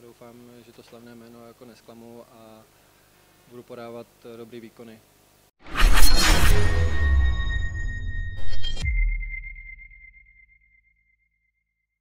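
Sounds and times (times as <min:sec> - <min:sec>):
high ringing tone: 0:05.8 - 0:11.0.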